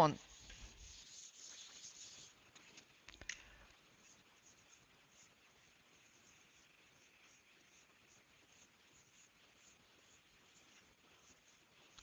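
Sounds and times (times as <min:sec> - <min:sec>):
eraser scrubbing whiteboard: 0:00.0 - 0:02.8, 0:03.8 - 0:12.0.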